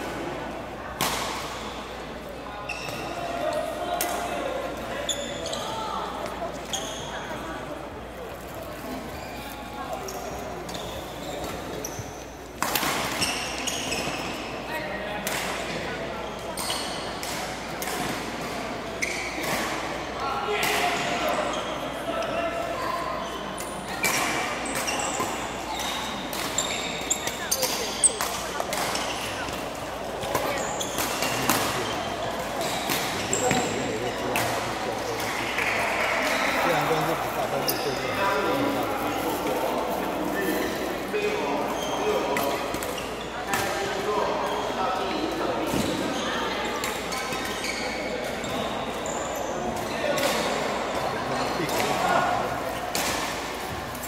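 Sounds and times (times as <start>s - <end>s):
murmur of voices: 0.0s - 54.0s.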